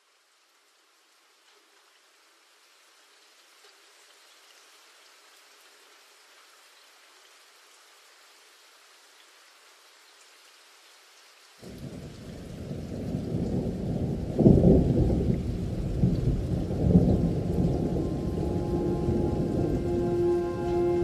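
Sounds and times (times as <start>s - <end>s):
rain hissing: 0.0s - 21.0s
rolling thunder rumble: 11.6s - 21.0s.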